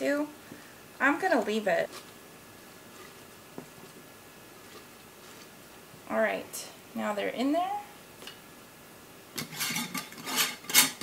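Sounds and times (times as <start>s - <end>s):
metal lid scraping on glass jar: 9.4s - 11.0s.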